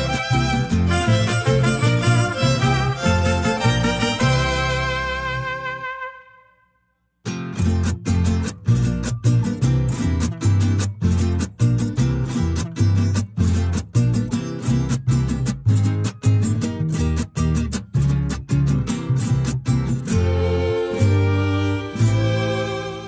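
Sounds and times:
acoustic guitars strumming: 0.0 - 6.4, 7.2 - 23.0
bass line: 0.0 - 6.5, 7.3 - 23.0.

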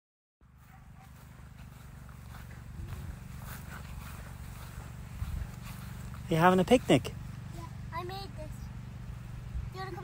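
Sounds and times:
wind buffeting microphone: 1.7 - 6.0.

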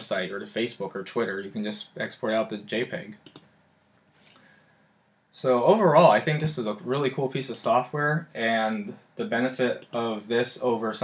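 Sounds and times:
person speaking: 0.0 - 3.5, 5.3 - 11.0
mouse clicks: 2.8 - 3.5.

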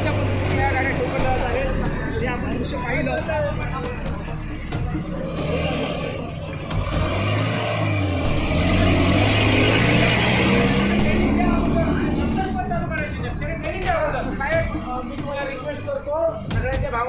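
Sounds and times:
men's voices: 0.0 - 7.0, 9.6 - 17.0
heavy vehicle engine pulling away: 3.5 - 16.3.

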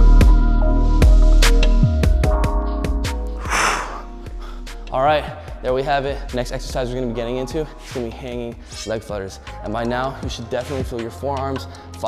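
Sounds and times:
man exhaling hard: 3.4 - 4.5.

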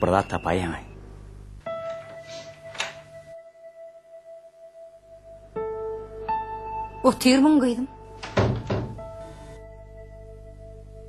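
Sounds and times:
soft music with held notes: 1.6 - 11.0
door thudding shut: 8.2 - 9.1.

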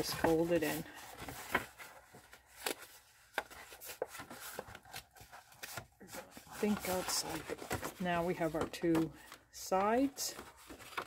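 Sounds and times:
card stock folding and creasing: 0.0 - 11.0.

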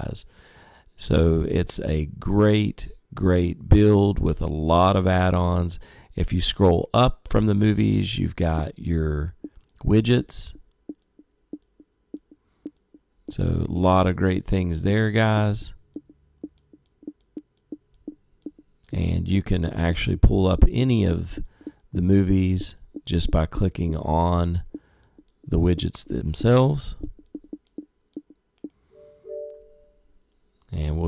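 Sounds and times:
menu navigation clicks: 29.0 - 29.9
two-note interface chime: 29.0 - 30.0.

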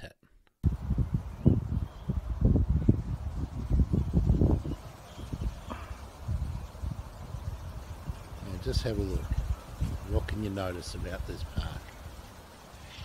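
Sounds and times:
wind buffeting microphone: 0.6 - 13.0.

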